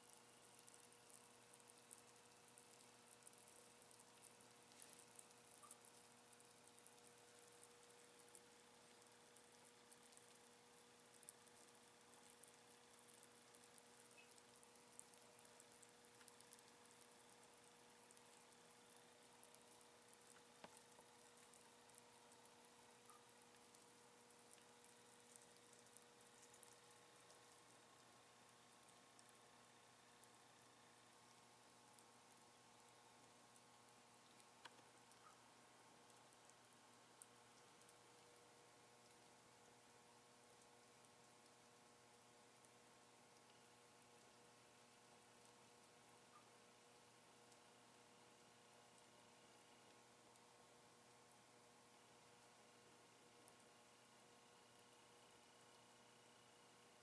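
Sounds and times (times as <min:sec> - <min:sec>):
steady low hum: 0:00.0 - 0:47.3.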